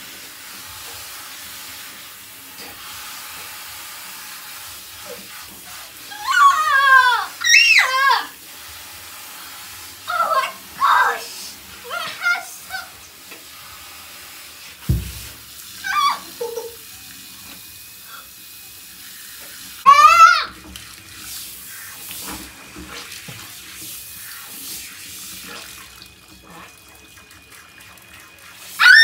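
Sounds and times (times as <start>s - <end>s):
water running from shower hose: 0.0s - 29.0s
low thump: 14.8s - 15.4s
girl crying: 15.9s - 16.8s.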